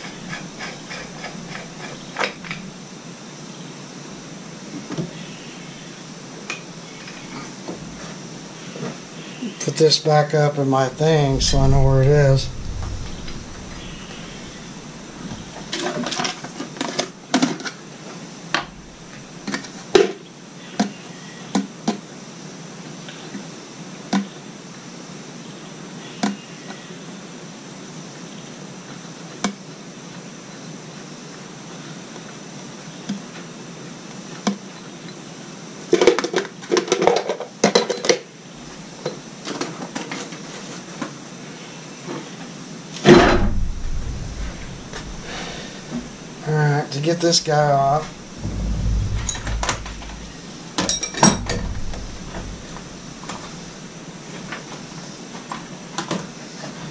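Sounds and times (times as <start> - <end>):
loud knock: 11.0 - 15.7, 43.1 - 46.2, 47.4 - 54.1.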